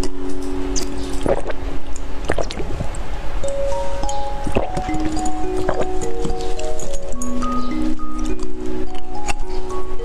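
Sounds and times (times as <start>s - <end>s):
wet mouth eating sounds: 0.0s - 3.7s, 4.4s - 9.5s
background music: 3.4s - 10.0s.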